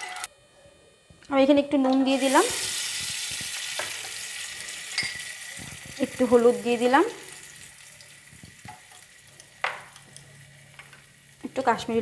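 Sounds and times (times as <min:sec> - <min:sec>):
hot oil sizzling in a frying pan: 0:02.2 - 0:12.0.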